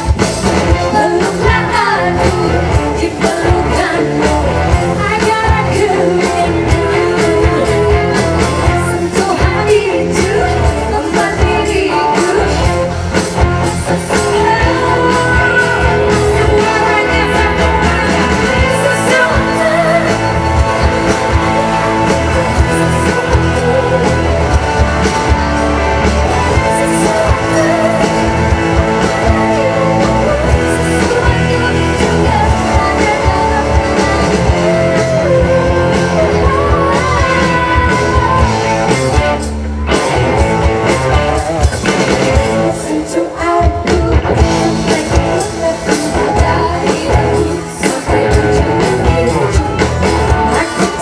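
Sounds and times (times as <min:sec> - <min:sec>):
pop-rock band playing: 0:00.0 - 0:51.0
woman singing: 0:00.7 - 0:13.0, 0:13.7 - 0:24.9, 0:26.1 - 0:39.0, 0:42.6 - 0:51.0.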